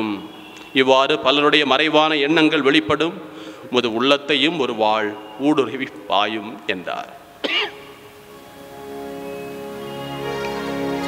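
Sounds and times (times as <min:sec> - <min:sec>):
man clearing throat: 0:07.4 - 0:07.8
soft music with held notes: 0:07.9 - 0:11.0.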